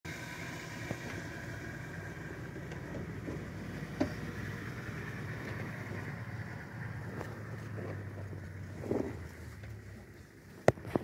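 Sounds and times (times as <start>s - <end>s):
vehicle engine idling: 0.1s - 11.0s.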